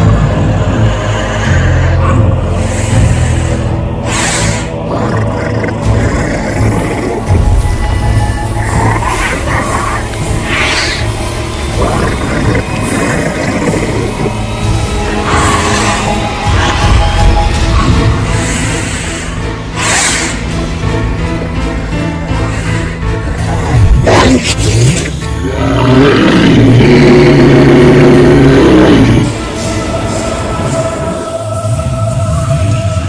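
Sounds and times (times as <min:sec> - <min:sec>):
horror film score: 0:00.0 - 0:33.0
low rumbling drone: 0:00.0 - 0:33.0.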